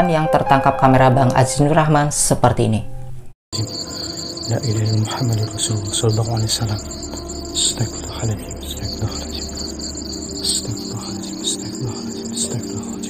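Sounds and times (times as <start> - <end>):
low background music tone: 2.6 - 13.0
crickets chirping: 3.6 - 13.0.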